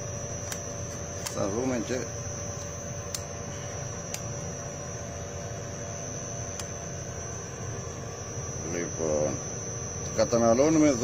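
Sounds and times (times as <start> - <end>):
electric motor hum: 0.0 - 11.0
high steady whine: 0.0 - 11.0.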